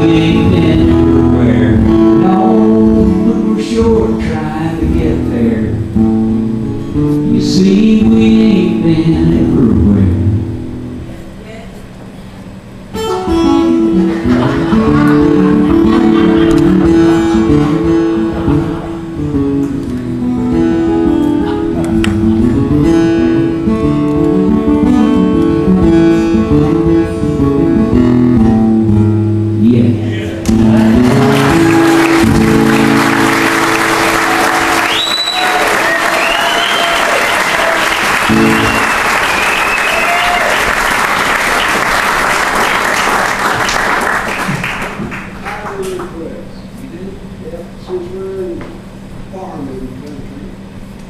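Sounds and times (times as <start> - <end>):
acoustic guitars playing: 0.0 - 11.4, 12.2 - 45.5
audience applause: 14.1 - 19.0, 30.5 - 46.3.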